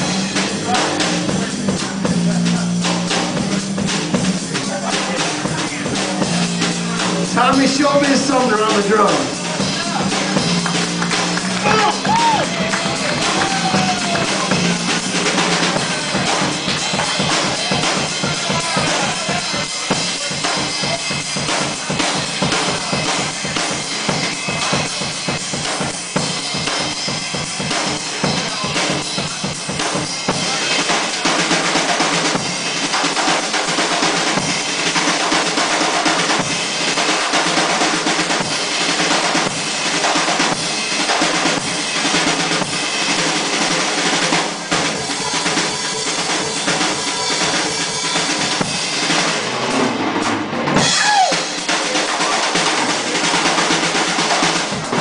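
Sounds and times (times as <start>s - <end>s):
drum kit solo: 0.0s - 55.0s.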